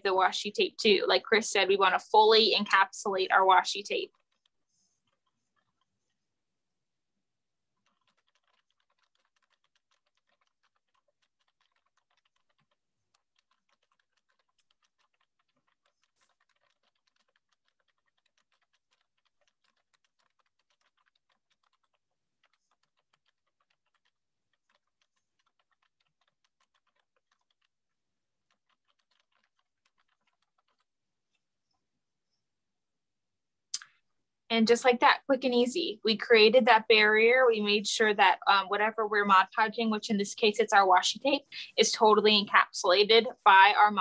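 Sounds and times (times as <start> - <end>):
faint rapid clicking: 0.0 - 6.2, 7.8 - 31.8.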